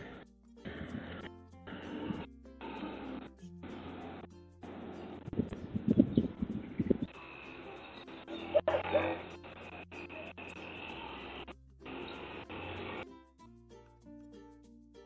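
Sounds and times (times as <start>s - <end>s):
muffled outdoor ambience: 0.0s - 13.2s
background music: 0.0s - 15.0s.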